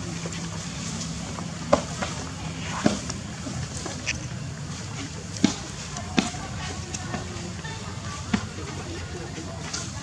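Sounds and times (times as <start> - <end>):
steady low background noise: 0.0 - 10.0.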